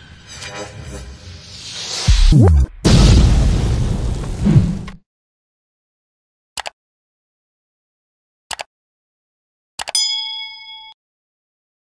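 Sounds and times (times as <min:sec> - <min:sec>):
notification bell ding: 0:09.9 - 0:11.0.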